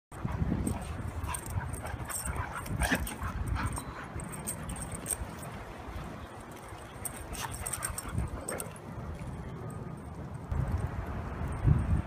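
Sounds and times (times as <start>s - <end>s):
dogs play-fighting noises: 0.1s - 9.4s.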